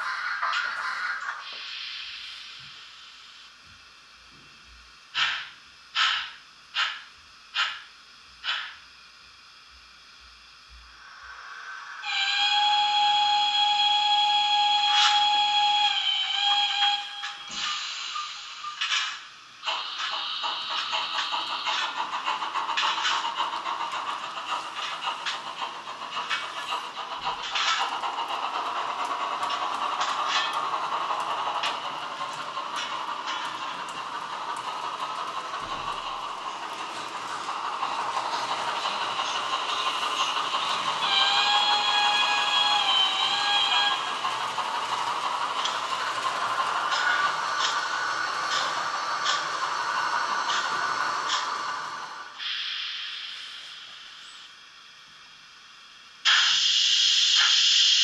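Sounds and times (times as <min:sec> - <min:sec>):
model train steam running sound: 0:00.0 - 0:58.0
model train steam whistle: 0:11.2 - 0:18.5, 0:38.0 - 0:47.2
model train wheels rattling: 0:18.8 - 0:52.2.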